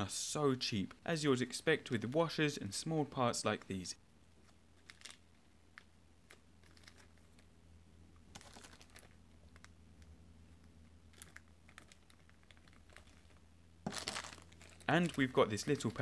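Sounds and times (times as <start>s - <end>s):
low steady hum: 0.0s - 16.0s
plastic bags crinkling: 4.8s - 5.3s, 6.3s - 7.5s, 8.3s - 9.8s, 11.0s - 16.0s.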